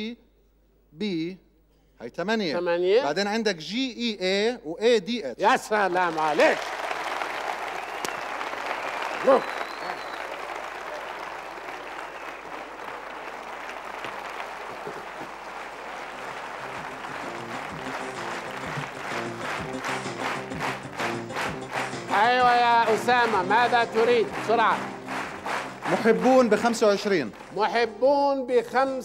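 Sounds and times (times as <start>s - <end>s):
audience applauding: 5.5s - 28.0s
music with steady beat and bass: 16.6s - 26.2s.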